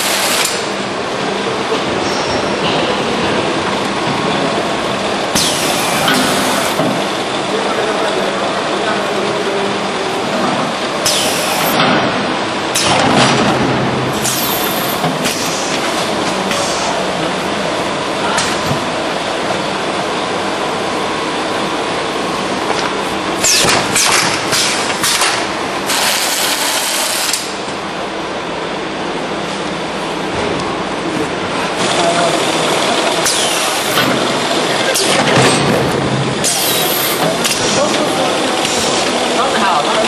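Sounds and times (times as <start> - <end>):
packing machine running: 0.0 - 40.0.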